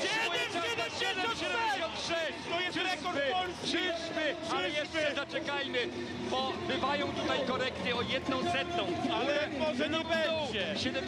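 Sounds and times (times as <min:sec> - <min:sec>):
man commentating a race: 0:00.0 - 0:11.0.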